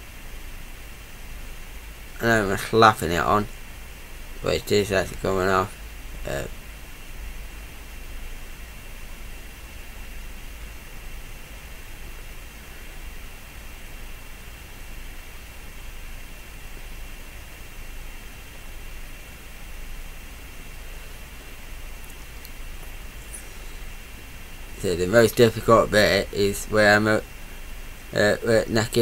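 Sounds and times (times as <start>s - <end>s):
faint high whine: 0.0s - 29.0s
low hum: 0.0s - 29.0s
steady hiss: 0.0s - 29.0s.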